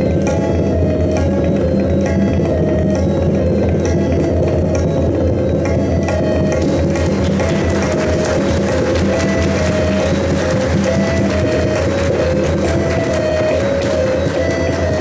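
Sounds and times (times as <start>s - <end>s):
harmonium melody: 0.0s - 15.0s
tabla drums: 0.0s - 15.0s.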